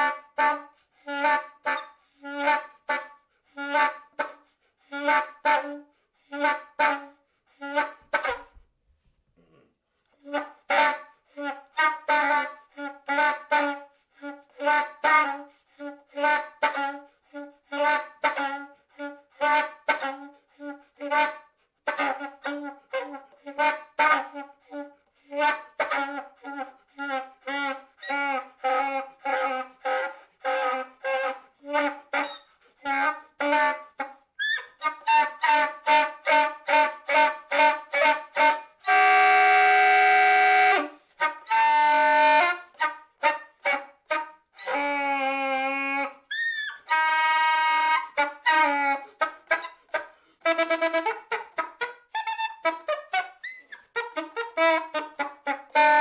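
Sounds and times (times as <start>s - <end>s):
soprano saxophone playing: 0.0s - 8.6s, 10.1s - 56.0s.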